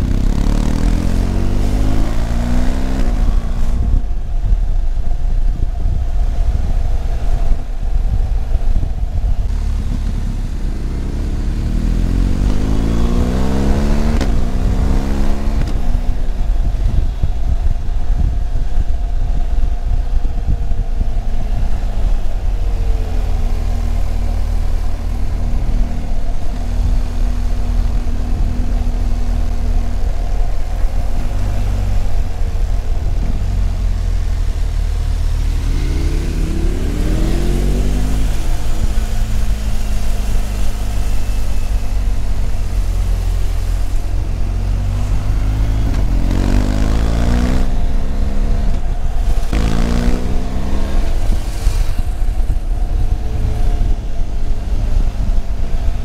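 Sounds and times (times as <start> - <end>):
wind rush on microphone: 0.0 - 56.0.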